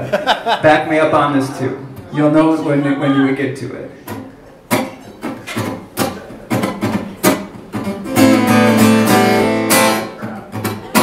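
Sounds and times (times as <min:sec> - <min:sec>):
acoustic guitar strums: 0:04.0 - 0:11.0.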